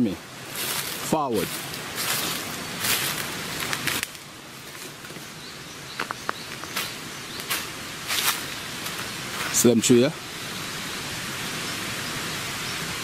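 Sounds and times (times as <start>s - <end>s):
outdoor hiss: 0.0s - 13.0s
footsteps on dry leaves: 0.4s - 9.7s.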